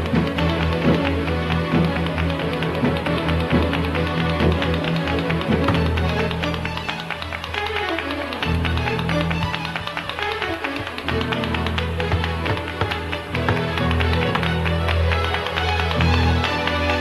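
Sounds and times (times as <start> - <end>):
sharp percussive taps: 0.0 - 17.0.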